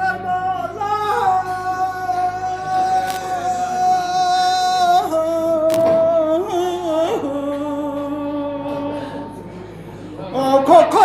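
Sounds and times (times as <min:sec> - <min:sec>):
man chanting a lament: 0:00.0 - 0:09.3.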